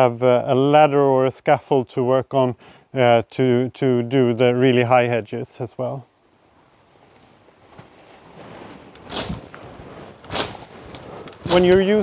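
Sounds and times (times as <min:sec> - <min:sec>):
leaves and shoots rustling: 0:06.2 - 0:12.0.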